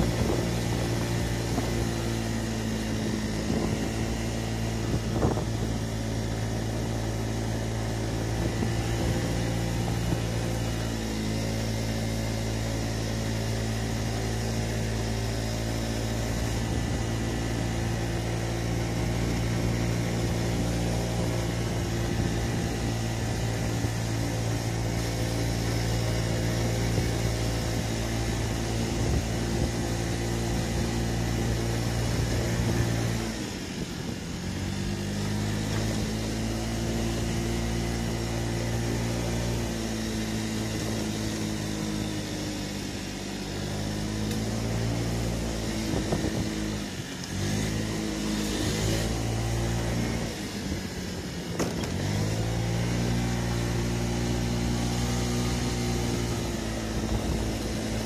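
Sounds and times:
scooter engine running: 0:00.0 - 0:58.0
wind and road noise: 0:00.0 - 0:58.0.

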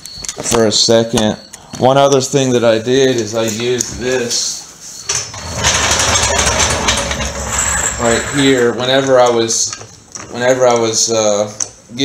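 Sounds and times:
floor jack rolling on concrete: 0:05.3 - 0:08.7.

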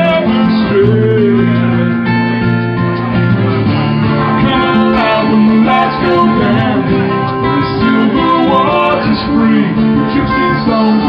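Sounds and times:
live band music: 0:00.0 - 0:11.0
strummed acoustic guitar: 0:00.0 - 0:11.0.

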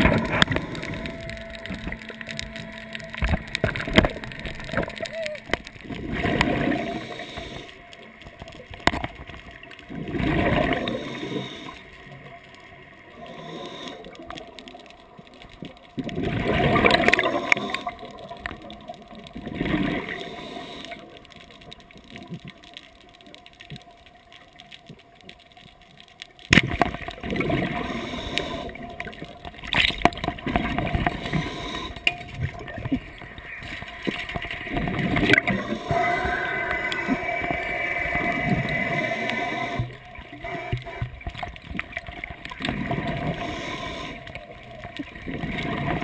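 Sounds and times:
underwater water rushing and gurgling: 0:00.0 - 0:46.0.

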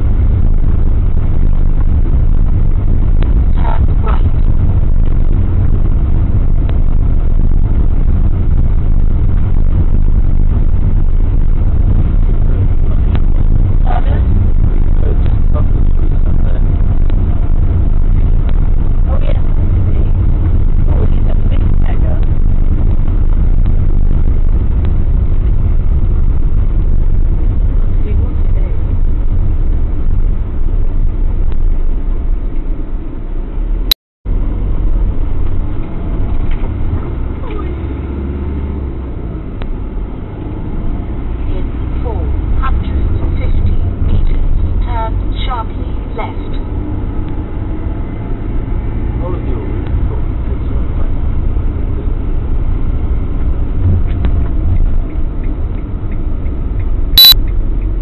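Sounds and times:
engine and road noise rumble: 0:00.0 - 0:58.0.

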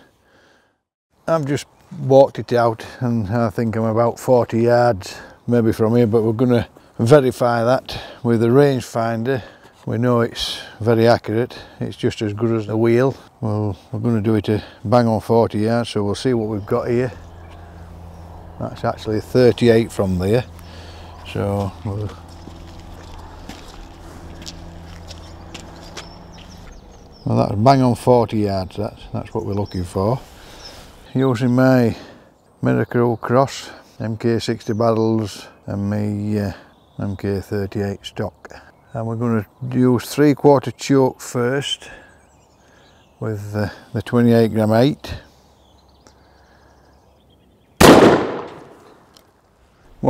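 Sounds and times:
steady low hum: 0:14.6 - 0:31.0
footsteps on wet tarmac: 0:17.1 - 0:27.2
shotgun shot with echo: 0:47.8 - 0:49.0.

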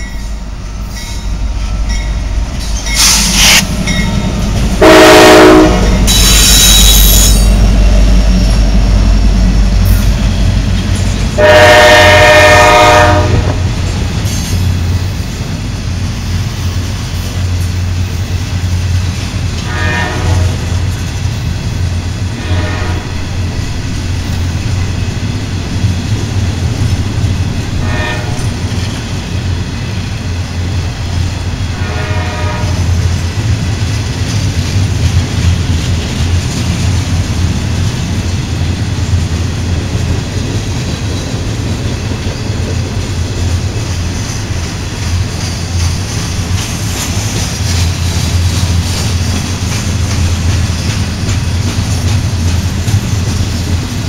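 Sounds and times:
train rumbling on rails: 0:00.0 - 0:54.0
train horn blasts: 0:04.8 - 0:07.5, 0:11.4 - 0:13.7, 0:19.6 - 0:20.8, 0:22.3 - 0:23.2, 0:27.8 - 0:28.6, 0:31.7 - 0:32.9.

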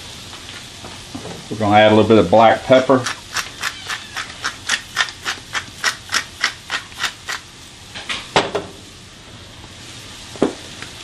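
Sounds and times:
pepper grinder rattling: 0:03.0 - 0:07.4.

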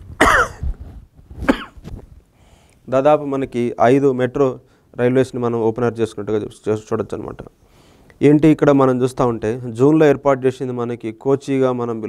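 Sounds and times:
man coughing: 0:00.2 - 0:00.6, 0:01.4 - 0:01.8.

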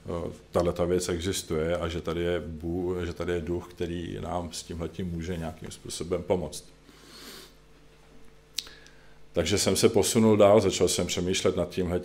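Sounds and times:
faint steady hum: 0:00.0 - 0:12.0
man breathing softly: 0:06.8 - 0:07.6, 0:08.6 - 0:09.3.

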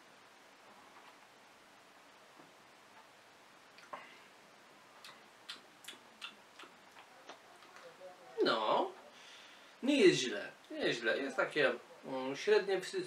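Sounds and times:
lip and tongue smacks: 0:05.0 - 0:07.4.

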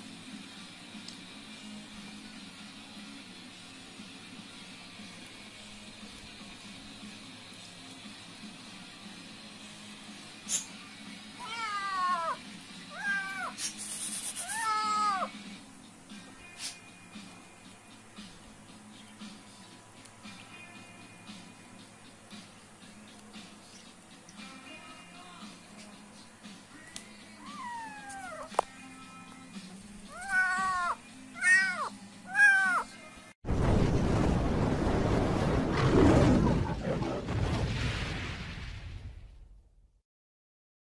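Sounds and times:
kitten meowing: 0:11.4 - 0:13.6, 0:14.4 - 0:15.3, 0:27.4 - 0:28.5, 0:30.1 - 0:32.9.

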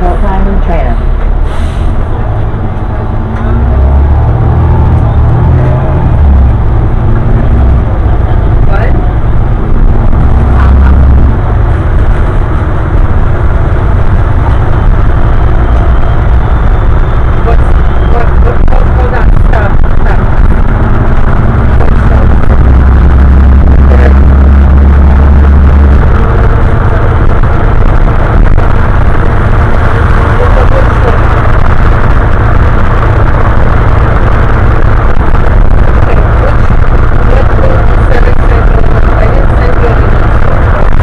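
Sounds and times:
voices: 0:00.0 - 0:01.1, 0:08.0 - 0:09.2, 0:17.2 - 0:20.6, 0:21.4 - 0:28.7, 0:29.9 - 0:41.0
bus engine and road rumble: 0:00.0 - 0:41.0.

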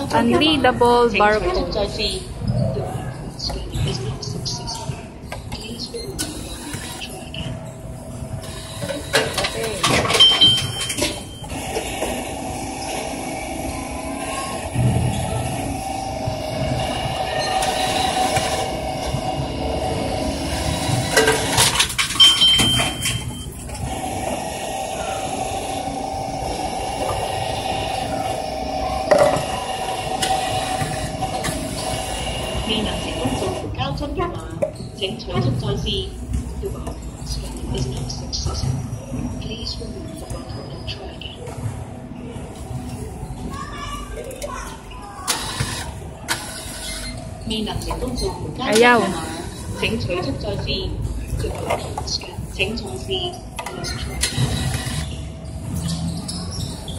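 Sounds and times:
machine motor whirring: 0:06.2 - 0:34.0, 0:45.2 - 0:52.8, 0:53.6 - 0:56.9.

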